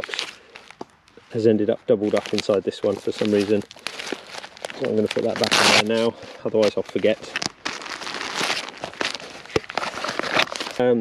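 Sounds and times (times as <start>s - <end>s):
fabric and plastic crinkling: 0.0s - 11.0s.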